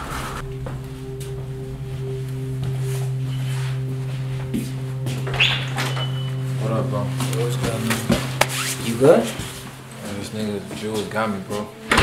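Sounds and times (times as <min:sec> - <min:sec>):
low music drone: 0:00.0 - 0:12.0
door opening: 0:05.2 - 0:06.5, 0:11.8 - 0:12.0.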